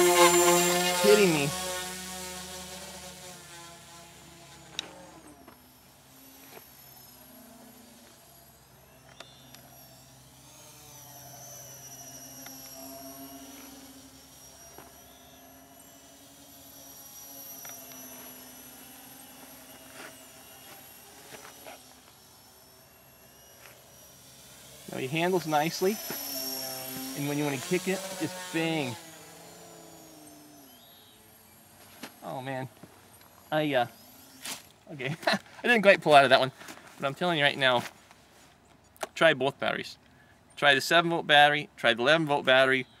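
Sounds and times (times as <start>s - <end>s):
distant electric motor buzz: 0.0s - 37.0s.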